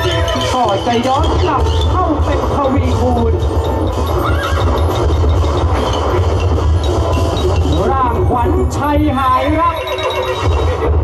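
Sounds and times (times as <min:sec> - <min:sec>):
hooves clip-clopping: 0:00.0 - 0:11.0
horse whinny: 0:03.7 - 0:06.4.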